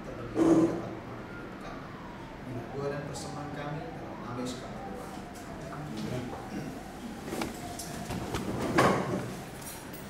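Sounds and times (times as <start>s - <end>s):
book pages turning: 7.2s - 8.8s.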